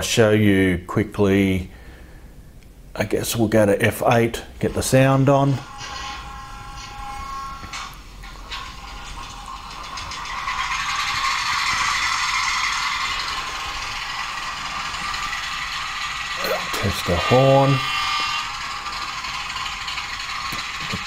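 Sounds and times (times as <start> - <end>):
model diesel engine sound: 5.5 - 21.0.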